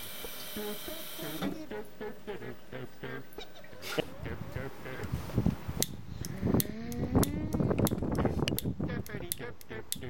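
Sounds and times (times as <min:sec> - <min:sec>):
person's rising vocal sound: 0:00.6 - 0:05.4, 0:06.1 - 0:10.0.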